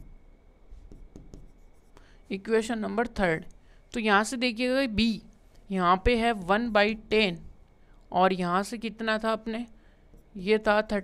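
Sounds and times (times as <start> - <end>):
stylus tapping on touchscreen: 0.7 - 2.1.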